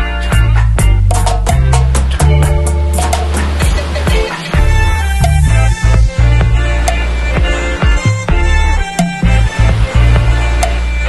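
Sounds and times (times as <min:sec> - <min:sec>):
reggae music: 0:00.0 - 0:11.0.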